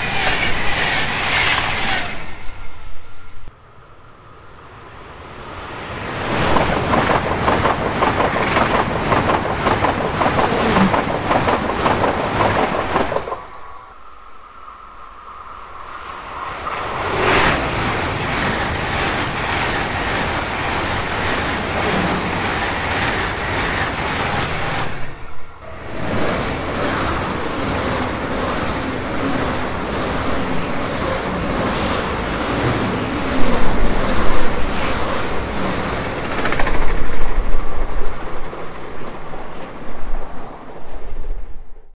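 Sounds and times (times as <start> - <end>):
high-speed train passing: 0.0 - 41.9
wind gusts on microphone: 4.8 - 41.9
train wheels clattering over rail joints: 6.4 - 13.6.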